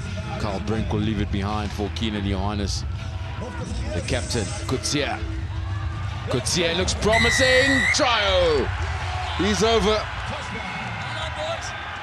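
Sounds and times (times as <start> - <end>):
stadium crowd cheering: 5.5 - 12.0.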